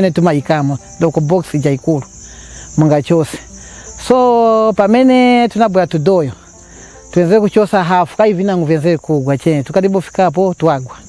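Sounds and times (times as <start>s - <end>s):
insects stridulating: 0.0s - 11.0s.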